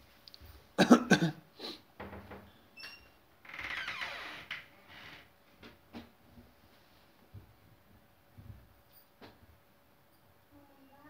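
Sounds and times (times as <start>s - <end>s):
person coughing: 0.8s - 1.4s.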